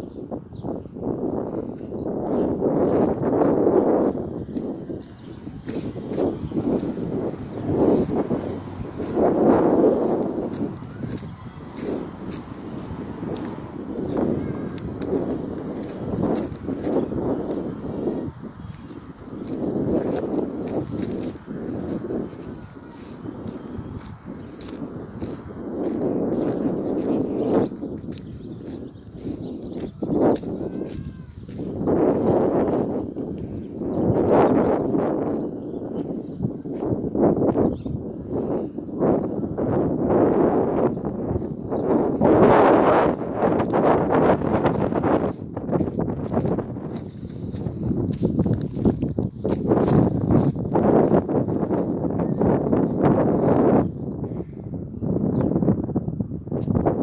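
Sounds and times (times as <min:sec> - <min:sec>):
footsteps on stony dirt track: 0:01.7 - 0:33.0, 0:43.6 - 0:53.0.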